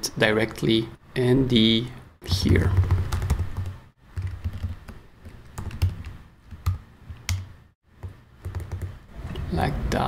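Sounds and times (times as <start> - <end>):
typing on computer keyboard: 2.4 - 7.4, 8.0 - 8.9.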